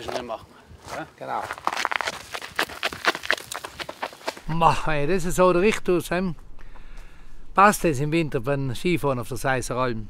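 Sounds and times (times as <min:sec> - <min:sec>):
running footsteps on gravel: 0:00.0 - 0:04.5.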